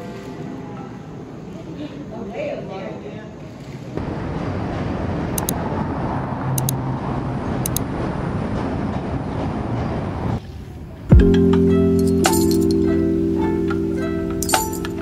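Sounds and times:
city traffic noise: 3.8s - 15.0s.

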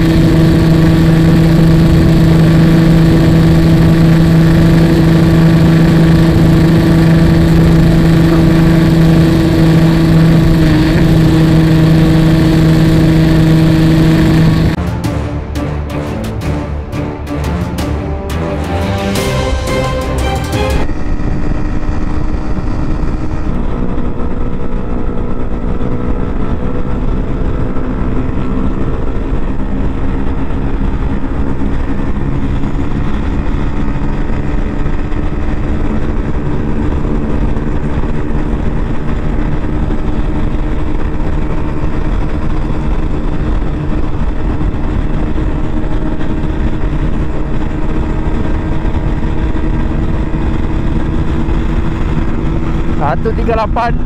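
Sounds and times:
motorcycle engine at high revs: 0.0s - 14.8s, 21.2s - 54.0s.

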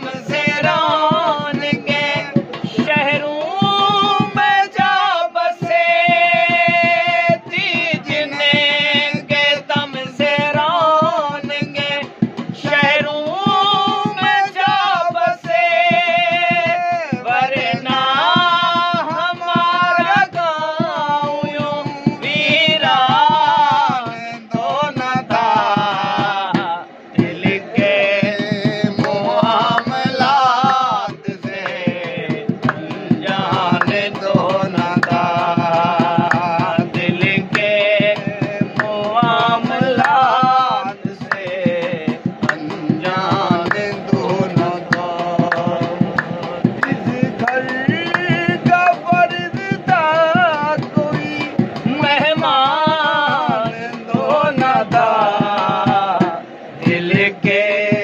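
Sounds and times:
hand drumming on steel vessel: 0.0s - 58.0s
man singing ghazal: 0.0s - 58.0s.

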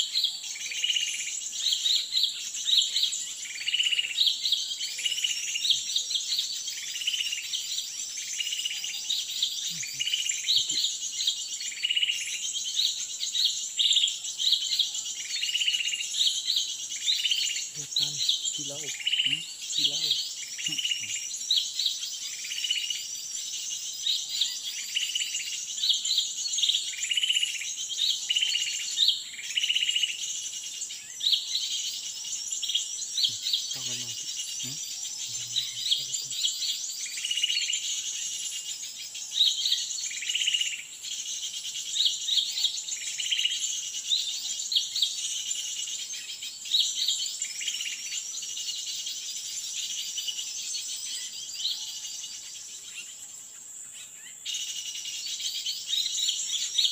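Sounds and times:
high buzz of forest insects: 0.0s - 56.9s
small bird calling: 0.0s - 56.9s.

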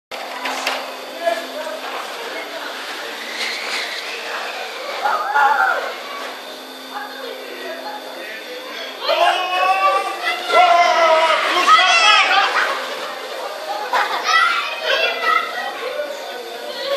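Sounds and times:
steady hum: 0.1s - 16.9s
indistinct voices: 0.4s - 16.9s
children calling out: 3.8s - 7.4s, 8.9s - 16.9s.

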